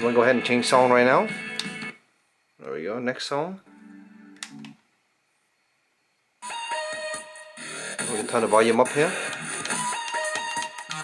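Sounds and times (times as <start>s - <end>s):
music from portable speaker: 6.4s - 11.0s.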